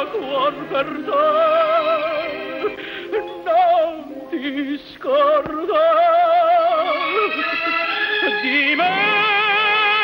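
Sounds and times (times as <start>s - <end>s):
operatic tenor singing: 0.0s - 10.0s.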